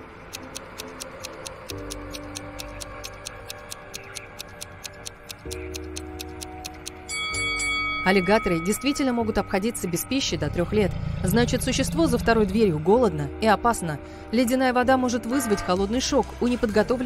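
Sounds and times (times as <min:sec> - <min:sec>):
clock ticking: 0:00.0 - 0:10.3
soft background music chords: 0:00.0 - 0:17.0
ringing chime: 0:07.1 - 0:10.4.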